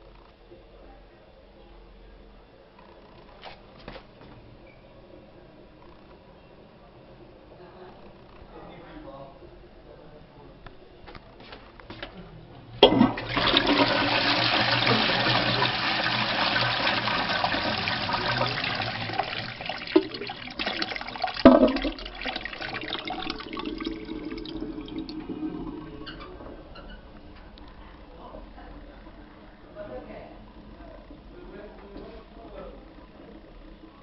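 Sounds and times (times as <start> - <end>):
toilet flushing water rush: 12.8 - 26.6.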